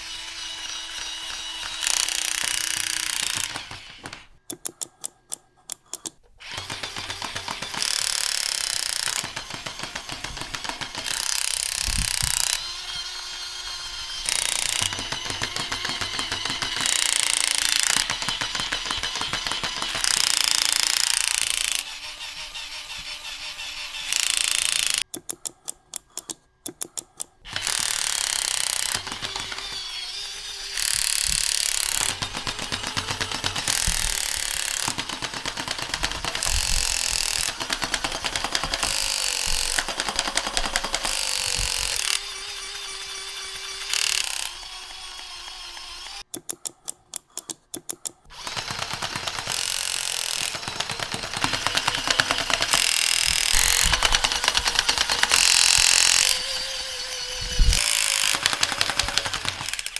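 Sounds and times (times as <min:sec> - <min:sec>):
toy gearbox clattering: 0:00.0 - 0:59.9.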